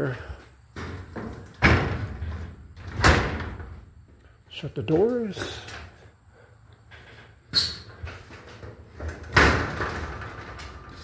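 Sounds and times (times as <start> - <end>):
metal shed doors banging shut: 0.8 - 3.9, 7.7 - 11.0.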